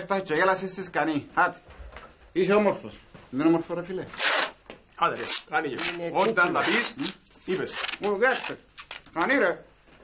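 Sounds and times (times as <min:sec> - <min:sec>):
person speaking: 0:02.3 - 0:09.8
packing tape pulled off roll: 0:04.2 - 0:04.6, 0:05.2 - 0:09.3.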